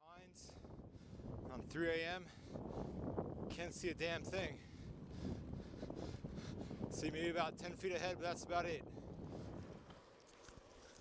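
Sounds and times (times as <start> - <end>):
wind on microphone: 0.3 - 11.0
bicycle rumbling on road: 2.3 - 11.0.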